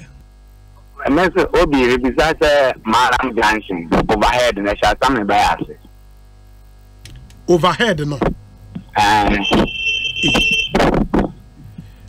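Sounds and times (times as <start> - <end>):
man talking: 0.9 - 5.9, 7.5 - 8.3, 8.9 - 10.6
high-pitched electronic beep: 9.3 - 10.8.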